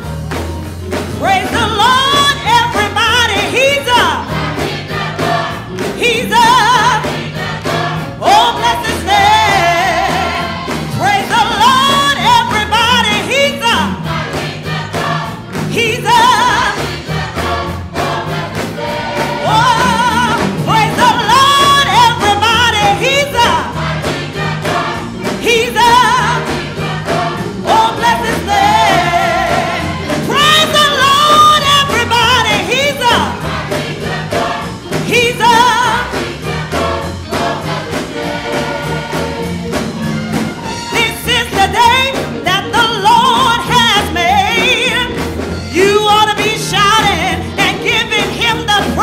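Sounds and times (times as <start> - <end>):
choir clapping in rhythm: 0.0 - 49.0
gospel choir singing: 0.0 - 49.0
woman singing lead: 1.2 - 4.3, 6.0 - 7.3, 8.2 - 14.0, 15.7 - 17.0, 19.4 - 23.8, 25.4 - 26.5, 27.7 - 33.4, 40.9 - 49.0.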